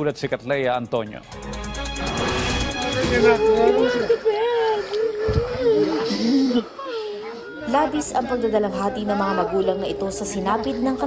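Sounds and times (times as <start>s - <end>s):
lower voice crying: 3.4s - 7.7s
woman wailing: 3.4s - 7.8s.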